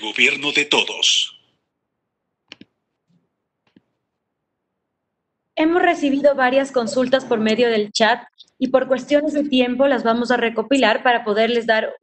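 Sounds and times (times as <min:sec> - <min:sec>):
faint mouse clicks: 0:02.5 - 0:04.0.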